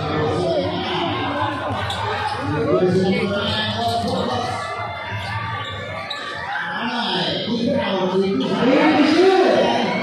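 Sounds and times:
crowd talking and shouting: 0:00.0 - 0:10.0.

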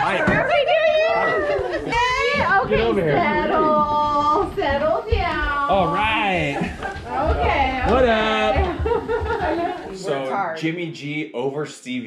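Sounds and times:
high-pitched wordless vocals: 0:09.4 - 0:10.7.

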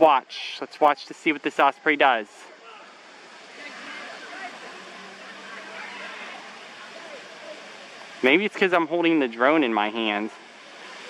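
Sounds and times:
faint scattered sounds: 0:00.0 - 0:11.0
outdoor background hiss: 0:00.0 - 0:11.0.

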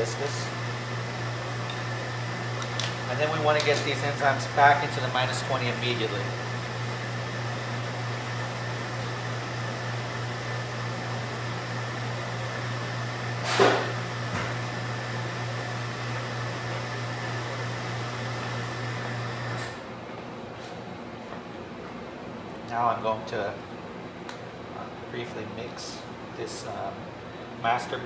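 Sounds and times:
low machine hum: 0:00.0 - 0:28.0.

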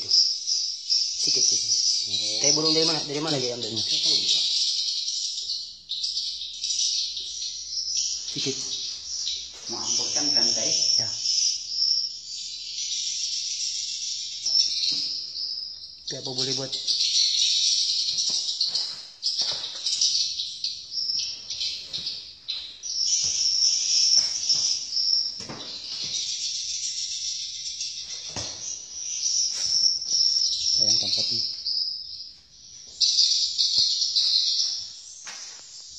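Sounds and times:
swiftlets twittering: 0:00.0 - 0:04.9, 0:06.5 - 0:17.8, 0:22.6 - 0:31.6.

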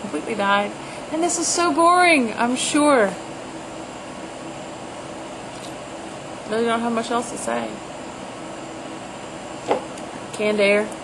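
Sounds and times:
ventilation fans humming: 0:00.0 - 0:11.0.

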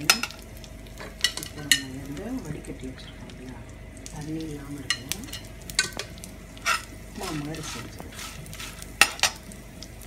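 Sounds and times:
food sizzling in oil: 0:00.0 - 0:10.0
spatula scraping a pan: 0:04.9 - 0:09.4.

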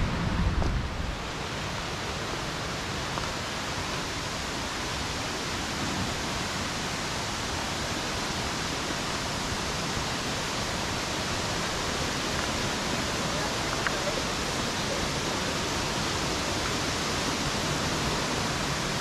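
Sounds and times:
waterfall rushing: 0:00.0 - 0:19.0.

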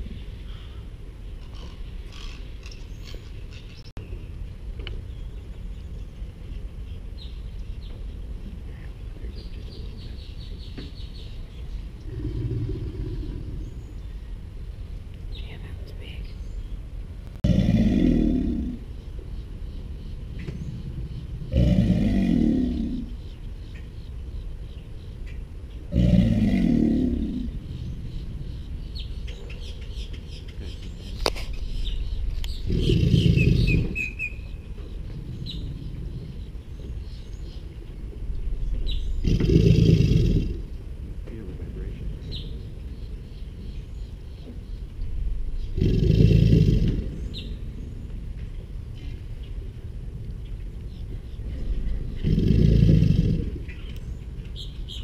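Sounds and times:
alligator bellowing: 0:12.0 - 0:13.9, 0:17.4 - 0:19.0, 0:20.7 - 0:23.3, 0:25.9 - 0:28.2, 0:32.5 - 0:34.4, 0:39.1 - 0:40.8, 0:45.6 - 0:47.6, 0:51.6 - 0:53.8
bird chirping rapidly: 0:27.7 - 0:37.7.

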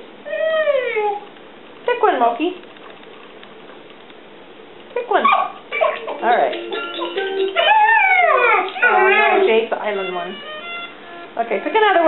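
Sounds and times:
dog howling: 0:00.3 - 0:01.2, 0:07.6 - 0:09.7
electronic toy music: 0:06.0 - 0:12.0.

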